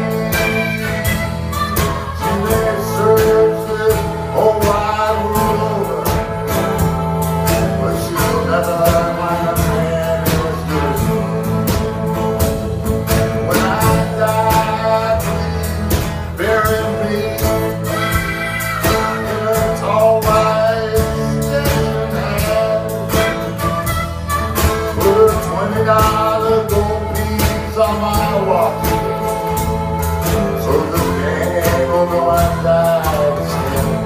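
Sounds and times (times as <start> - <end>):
blues band playing: 0.0 - 34.0
harmonica melody: 0.0 - 34.0.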